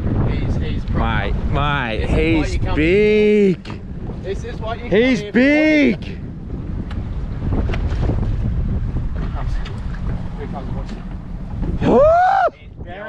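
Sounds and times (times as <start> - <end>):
boat engine rumble: 0.0 - 13.0
wind buffeting microphone: 0.0 - 13.0
man shouting: 5.1 - 6.0, 11.8 - 12.6.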